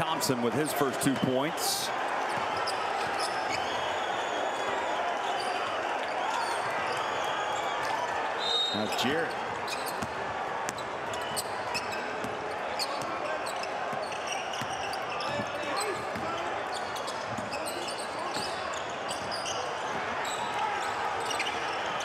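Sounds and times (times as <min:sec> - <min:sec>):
players' voices: 0:00.0 - 0:22.0
sneakers squeaking: 0:02.2 - 0:04.7, 0:05.4 - 0:22.0.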